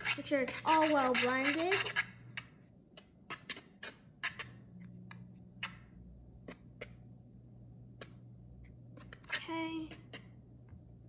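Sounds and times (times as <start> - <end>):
whisk tapping plastic bowl: 0.0 - 2.5.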